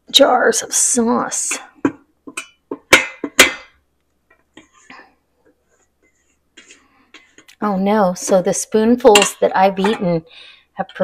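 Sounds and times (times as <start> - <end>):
spatula scraping a metal pot: 5.6 - 7.5.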